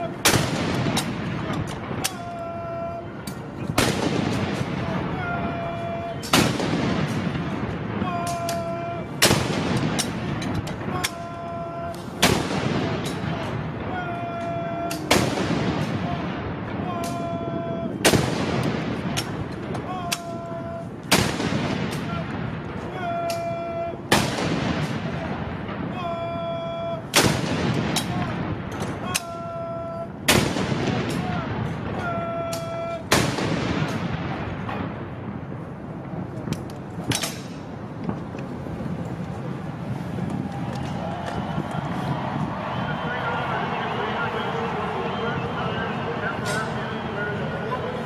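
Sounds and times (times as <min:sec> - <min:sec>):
cannon shots with echo: 0:00.0 - 0:02.4, 0:03.6 - 0:05.6, 0:06.2 - 0:11.3, 0:12.0 - 0:20.0, 0:20.9 - 0:23.1, 0:23.9 - 0:26.3, 0:27.0 - 0:29.1, 0:30.2 - 0:32.2, 0:32.9 - 0:38.3.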